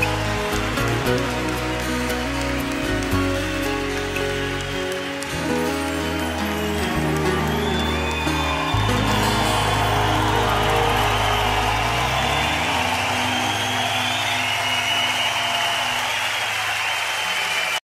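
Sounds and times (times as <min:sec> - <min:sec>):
crowd cheering: 0:00.0 - 0:17.8.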